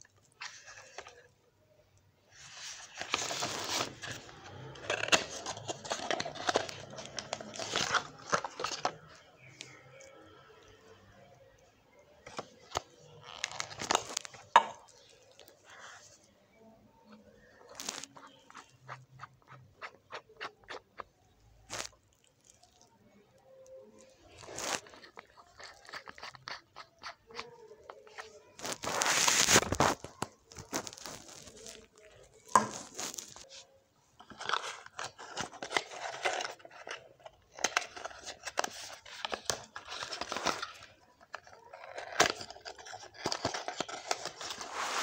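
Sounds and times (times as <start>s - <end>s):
packaging crinkling: 2.9s - 9.8s, 12.2s - 15.5s, 17.6s - 20.8s, 24.3s - 33.5s, 34.2s - 45.0s.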